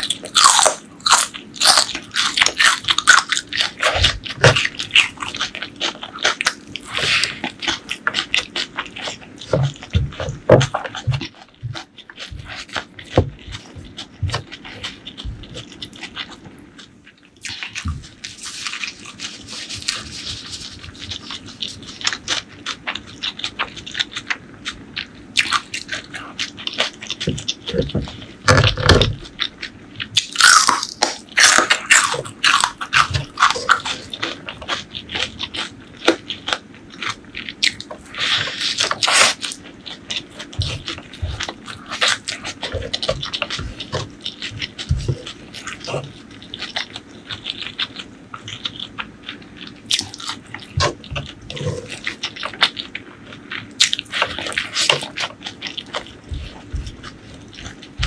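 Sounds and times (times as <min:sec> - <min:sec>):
wet chewing and lip-smacking: 0:00.0 - 0:58.0.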